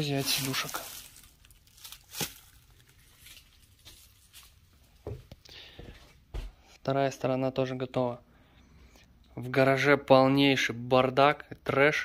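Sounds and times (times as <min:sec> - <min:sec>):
plastic film rustling: 0:00.0 - 0:05.0.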